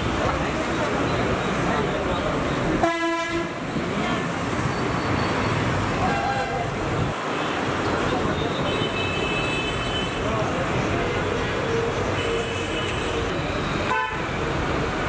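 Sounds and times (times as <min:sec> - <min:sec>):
road traffic noise: 0:00.0 - 0:15.0
vehicle horn honking: 0:02.8 - 0:03.5, 0:13.8 - 0:14.3.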